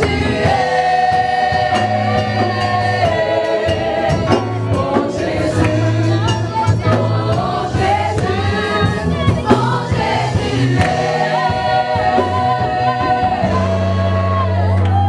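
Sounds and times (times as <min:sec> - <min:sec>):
group singing worship song: 0:00.0 - 0:15.0.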